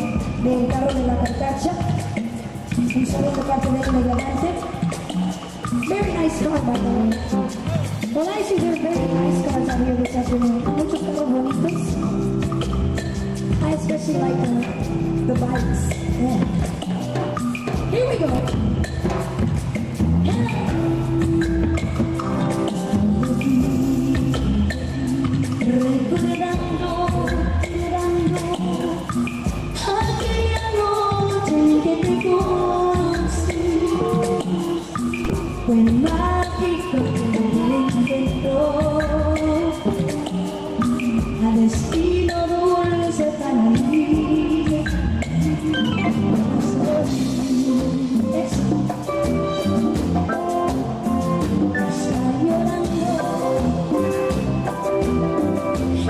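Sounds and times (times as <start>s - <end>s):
drums and percussion: 0.0s - 56.0s
keyboard: 0.0s - 56.0s
live band playing: 0.0s - 56.0s
electric bass: 11.5s - 28.5s, 35.2s - 37.2s, 44.0s - 56.0s.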